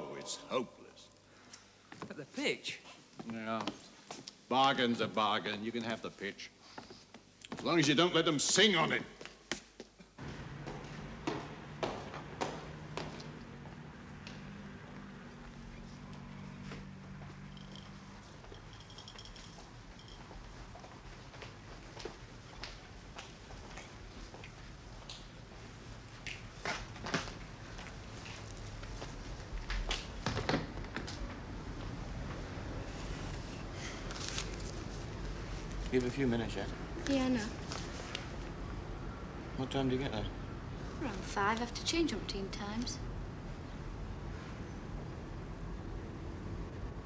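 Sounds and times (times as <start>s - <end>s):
footsteps on platform: 9.3s - 14.4s.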